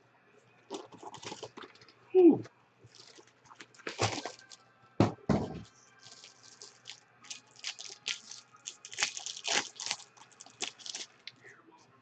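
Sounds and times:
foil wrappers crinkling and tearing: 0.7s - 1.9s, 2.9s - 4.6s, 6.0s - 11.4s.

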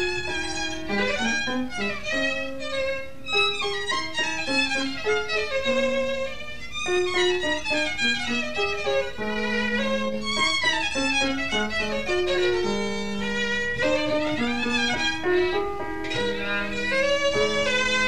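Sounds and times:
piano accompaniment: 0.0s - 18.0s
solo violin melody: 0.0s - 18.0s.

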